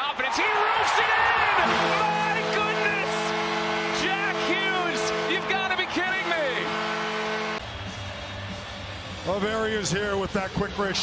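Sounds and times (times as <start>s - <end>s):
crowd cheering and shouting: 0.0s - 3.3s, 3.9s - 11.0s
goal horn sounding: 1.4s - 7.6s.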